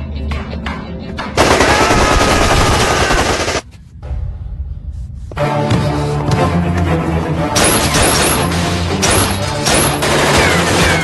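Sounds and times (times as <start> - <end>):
automatic gunfire: 1.4 - 3.6.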